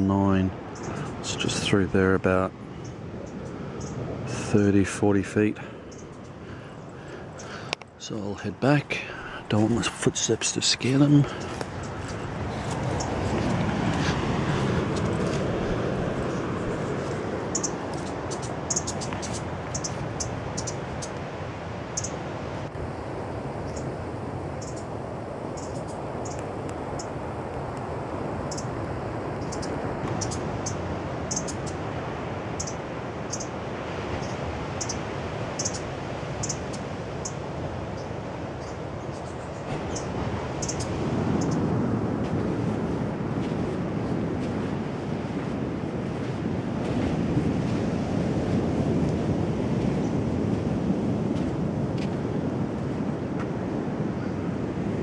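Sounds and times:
wind: 0.0s - 55.0s.

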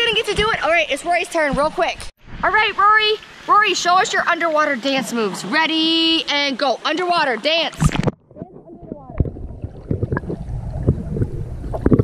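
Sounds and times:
water bubbling: 7.2s - 12.0s
underwater knocks: 7.8s - 12.0s
underwater rumble: 7.8s - 12.0s.

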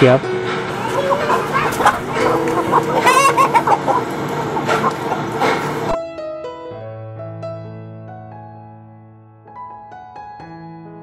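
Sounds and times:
chickens clucking: 0.5s - 6.0s.

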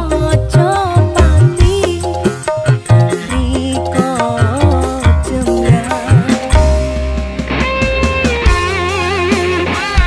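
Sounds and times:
guitar bass and keyboard: 0.0s - 10.0s
held bass note: 5.0s - 8.9s.

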